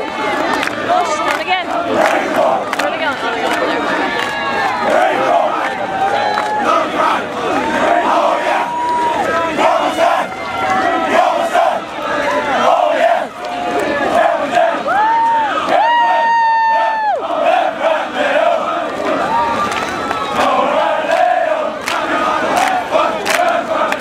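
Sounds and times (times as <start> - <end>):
crowd yelling and cheering: 0.0 - 24.0
long drawn-out shouts: 0.0 - 24.0.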